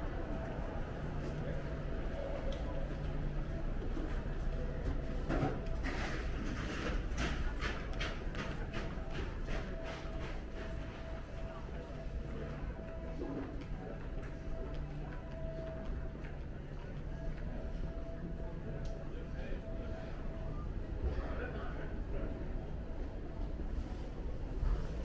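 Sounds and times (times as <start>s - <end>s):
murmur of voices: 0.0s - 25.0s.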